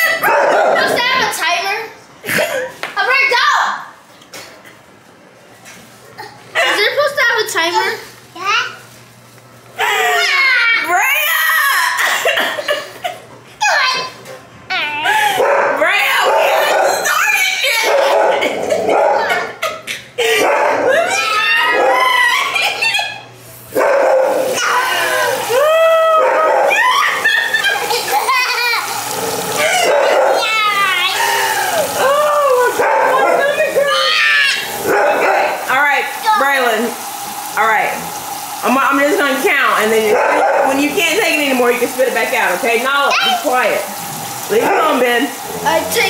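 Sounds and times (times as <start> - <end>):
children crying and wailing: 9.8 - 12.3, 18.6 - 23.3, 24.5 - 32.8, 33.7 - 34.8
tap running: 21.6 - 46.0.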